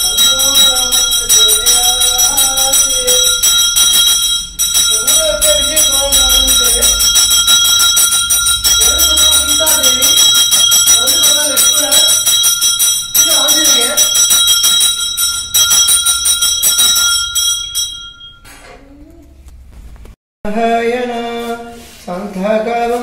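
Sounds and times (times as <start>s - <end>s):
man chanting: 0.0s - 7.8s, 8.5s - 12.4s, 20.5s - 23.0s
hand bell ringing rapidly: 0.0s - 18.5s.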